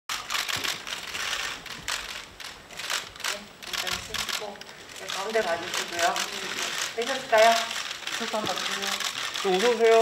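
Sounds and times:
camera shutters clicking: 0.1s - 10.0s.

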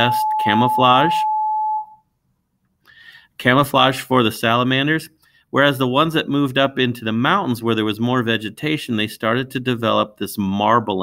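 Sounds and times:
electronic beep tone: 0.0s - 2.0s.

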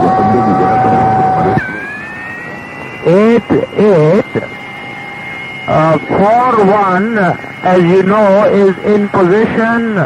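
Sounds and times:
garbled radio chatter: 0.0s - 4.7s
radio interference whistle: 0.0s - 10.0s.

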